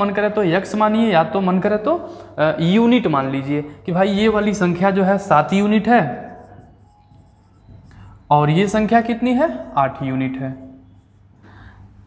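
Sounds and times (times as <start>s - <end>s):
marker pen writing on whiteboard: 3.9s - 12.0s.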